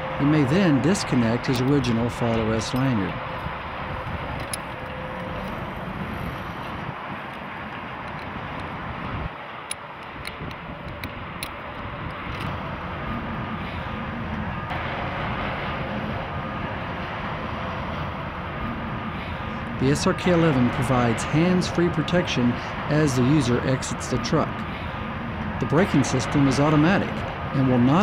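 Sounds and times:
highway traffic rumble: 0.0s - 28.0s.

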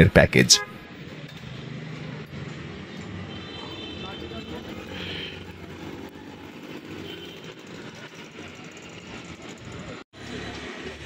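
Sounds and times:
busy open-air ambience: 0.0s - 11.0s.

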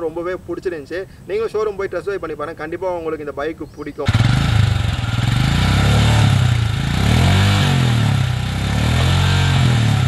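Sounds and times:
motorcycle engine blips: 4.0s - 10.0s
motorcycle engine idling: 4.0s - 10.0s.

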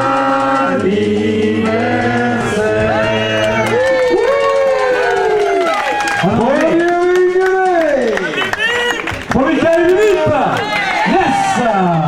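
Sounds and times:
man shouting over public address: 6.2s - 12.0s.

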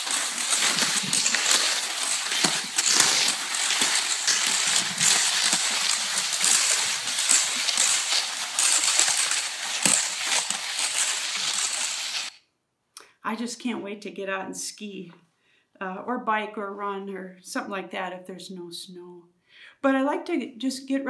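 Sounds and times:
skis swishing over crusty snow: 0.0s - 12.3s.

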